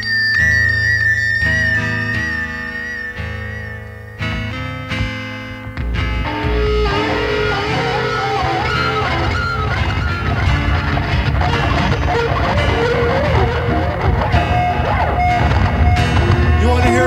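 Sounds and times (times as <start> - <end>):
electric guitar lead: 0.0 - 17.0
rock band playing: 0.0 - 17.0.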